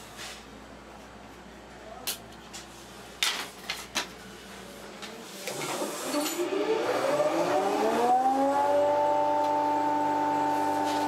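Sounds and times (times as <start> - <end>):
electric motor spinning up: 5.6 - 11.0.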